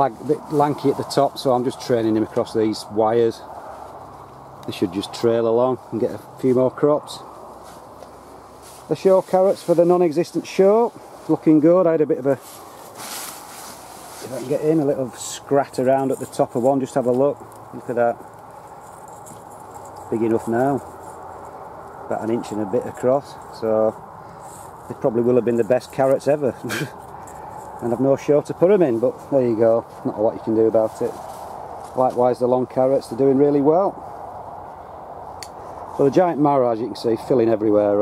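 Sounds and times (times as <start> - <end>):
fingers scratching in compost: 0.0 - 2.8, 5.9 - 32.4
wind hiss: 0.0 - 37.6.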